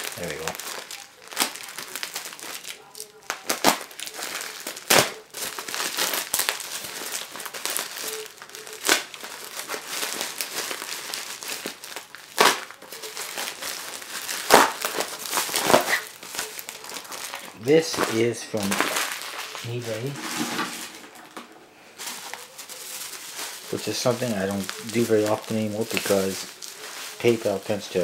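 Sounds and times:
plastic mailer crinkling: 0.0 - 28.0.

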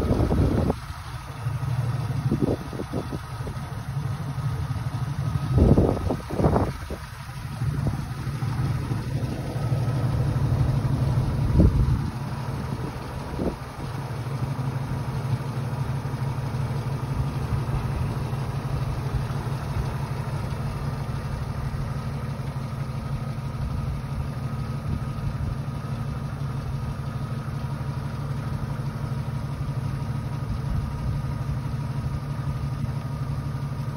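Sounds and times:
car engine idling: 0.0 - 33.9.

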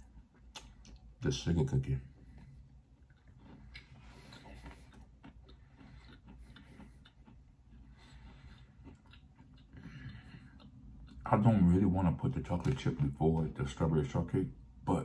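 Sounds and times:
chewing soft cookie: 0.0 - 14.6.

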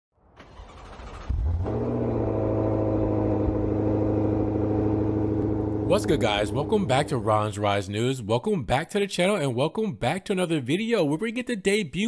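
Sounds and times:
car engine rumbling drone: 0.5 - 7.9.

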